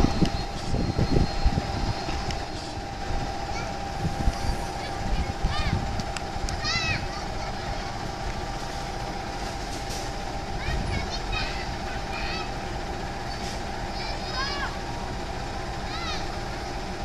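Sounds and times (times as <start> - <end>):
high hum: 0.0 - 17.0
locomotive engine rumbling: 0.0 - 17.0.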